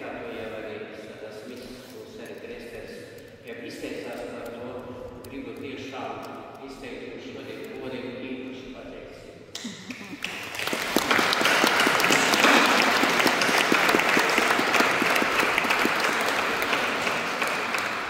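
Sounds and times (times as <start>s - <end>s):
crowd applauding: 9.6s - 18.0s.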